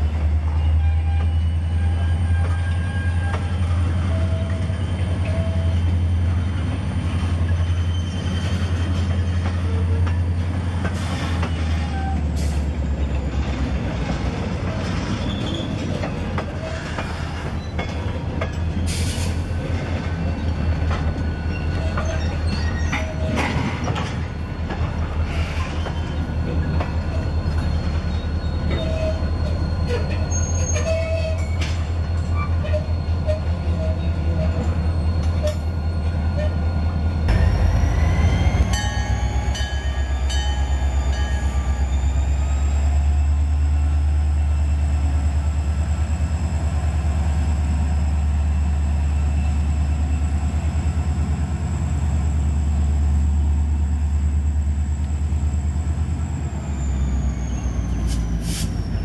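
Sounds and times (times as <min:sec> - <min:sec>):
diesel locomotive engine: 0:00.0 - 0:59.0
freight cars rolling on rails: 0:00.0 - 0:59.0
wheel squeals: 0:07.2 - 0:10.4, 0:14.6 - 0:18.6, 0:20.0 - 0:24.7, 0:25.3 - 0:43.2
rising engine whine: 0:37.2 - 0:45.9.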